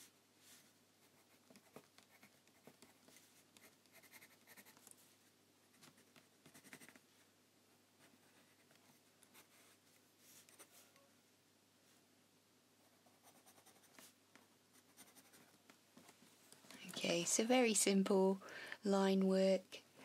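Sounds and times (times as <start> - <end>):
pencil scratching on paper: 0.6 - 4.9, 5.7 - 7.0, 12.9 - 15.6.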